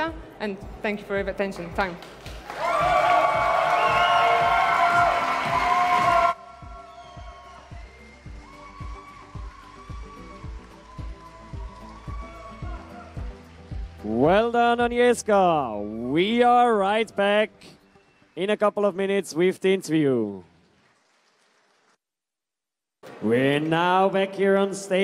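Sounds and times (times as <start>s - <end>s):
background music with steady beat: 0.0s - 20.4s
audience applauding and cheering: 2.0s - 14.5s.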